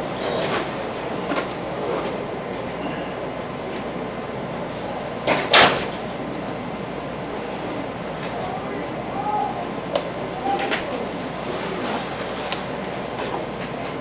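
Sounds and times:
faint voices: 0:00.8 - 0:14.0.

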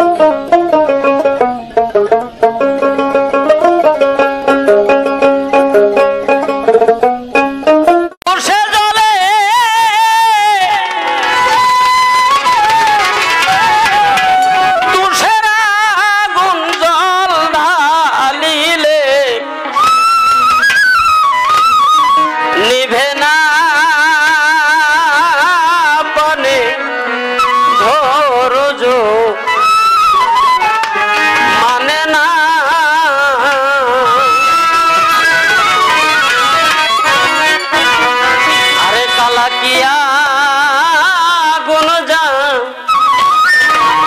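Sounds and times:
folk melody instrument: 0:00.0 - 0:44.0
tabla: 0:00.0 - 0:44.0
person singing: 0:08.3 - 0:19.8, 0:22.4 - 0:29.6, 0:30.6 - 0:42.9
drum strokes: 0:11.2 - 0:15.6.

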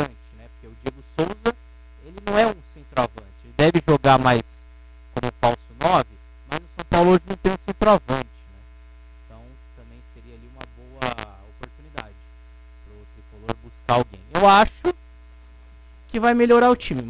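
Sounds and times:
men speaking: 0:00.0 - 0:04.6, 0:05.2 - 0:08.7, 0:09.3 - 0:15.0, 0:16.1 - 0:17.0
electrical mains hum: 0:00.0 - 0:17.0.

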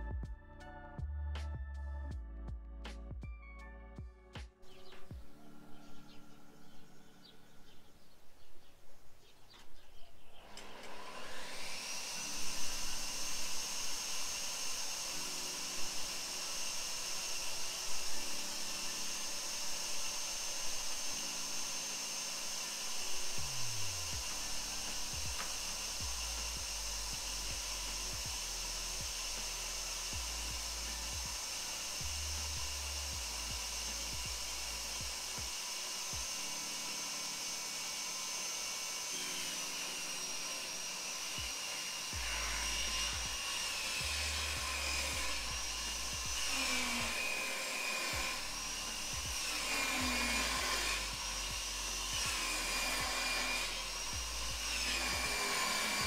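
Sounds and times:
power tool motor whining: 0:09.6 - 0:56.0.

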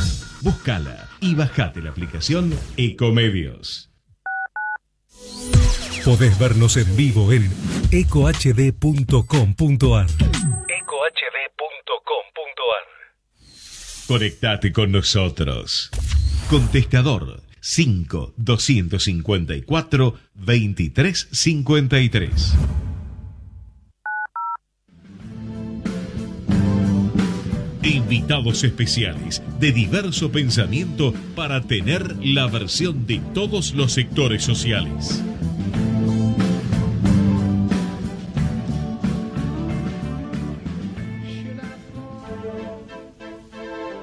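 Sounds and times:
telephone keypad tones: 0:04.3 - 0:04.8, 0:24.1 - 0:24.6.

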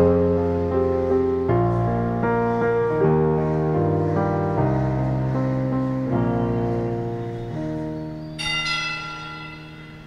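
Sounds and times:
bell ringing: 0:08.4 - 0:10.0.

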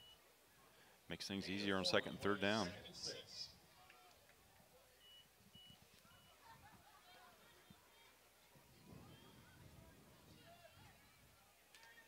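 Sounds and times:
faint distant voices: 0:00.0 - 0:12.0
faint short high beeps: 0:05.0 - 0:06.5.

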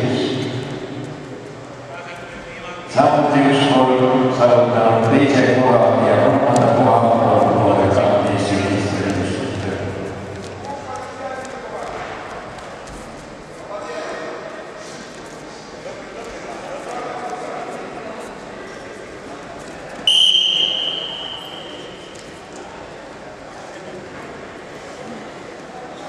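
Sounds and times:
voices calling out in a hall: 0:00.0 - 0:26.0
referee's whistle blast: 0:20.1 - 0:22.1.

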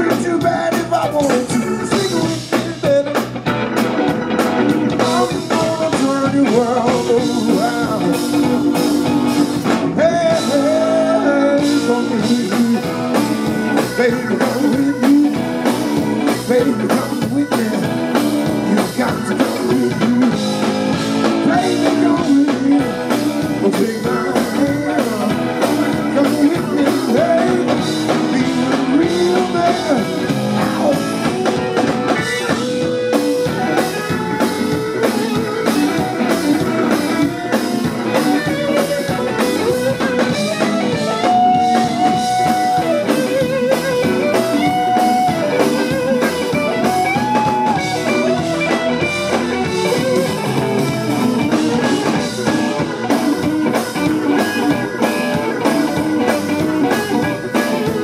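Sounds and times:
bass: 0:00.0 - 0:58.0
drums: 0:00.0 - 0:58.0
electric guitar lead lines: 0:00.0 - 0:58.0.

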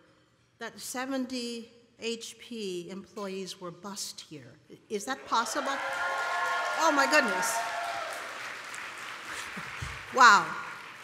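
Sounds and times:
audience applauding: 0:05.2 - 0:11.0.

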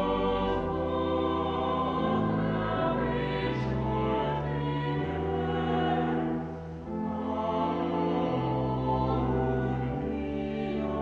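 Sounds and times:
church choir singing: 0:00.0 - 0:11.0.

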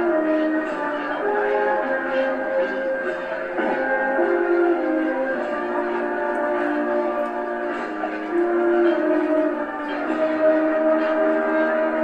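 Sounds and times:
brass band playing a march: 0:00.0 - 0:12.0.

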